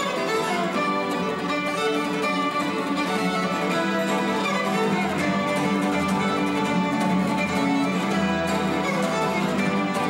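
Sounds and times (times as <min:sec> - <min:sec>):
acoustic guitar accompaniment: 0:00.0 - 0:10.0
bowed violin: 0:00.0 - 0:10.0.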